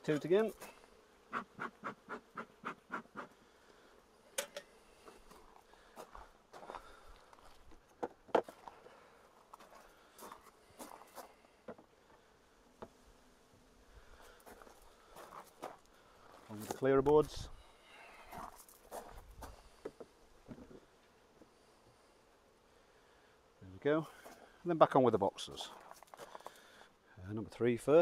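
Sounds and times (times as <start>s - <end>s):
honeybees buzzing: 0.0s - 24.6s
bee smoker puffs: 0.0s - 27.2s
knocks of wooden hive parts: 8.0s - 8.6s.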